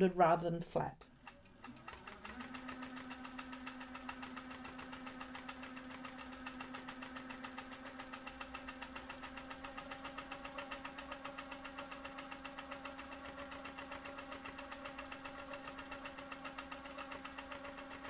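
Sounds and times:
quilting machine motor hum: 0:01.0 - 0:18.0.

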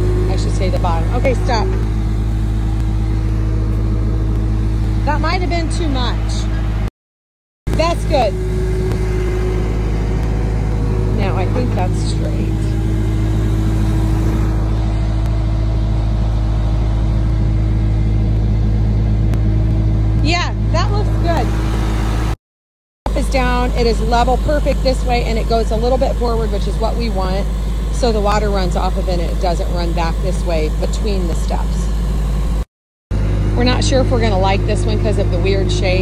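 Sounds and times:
loader engine droning: 0:00.0 - 0:06.9, 0:07.7 - 0:22.4, 0:23.1 - 0:36.0.

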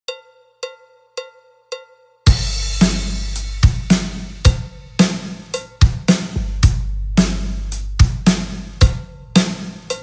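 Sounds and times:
cowbell strikes: 0:00.1 - 0:06.4
background music: 0:00.1 - 0:07.6.

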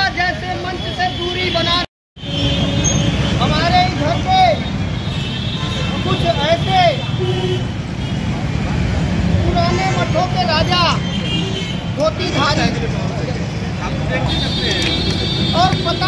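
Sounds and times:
road traffic rumble: 0:00.0 - 0:16.0
people talking: 0:12.0 - 0:15.0.

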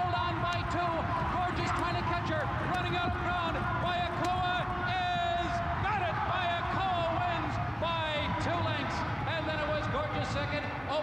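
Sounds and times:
broadcast background noise: 0:00.0 - 0:11.0
excited race commentary: 0:00.0 - 0:11.0.

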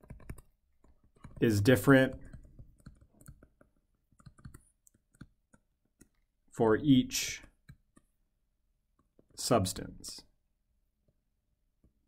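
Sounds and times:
stylus tapping on tablet screen: 0:00.0 - 0:06.2, 0:07.4 - 0:08.2.

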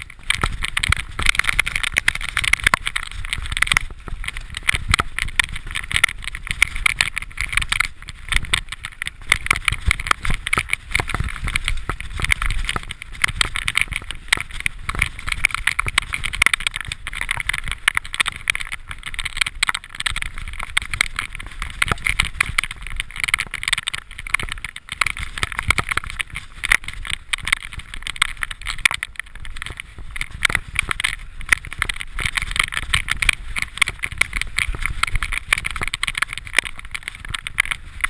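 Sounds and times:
bike rattling over rocks: 0:00.0 - 0:38.0
wind rumble on microphone: 0:00.0 - 0:38.0.

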